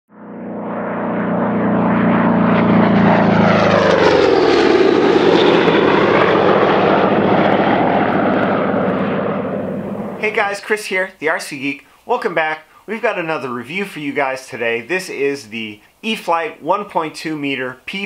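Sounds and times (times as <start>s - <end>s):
propeller aircraft flying past: 0.1s - 10.4s.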